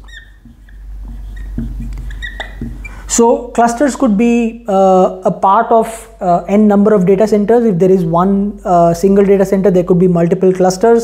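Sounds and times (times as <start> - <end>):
marker squeaking on a whiteboard: 0.0 - 3.2.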